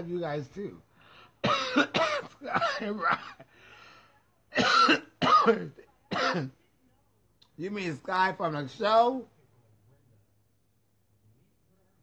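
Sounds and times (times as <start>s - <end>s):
person coughing: 1.4s - 3.5s, 4.6s - 6.5s.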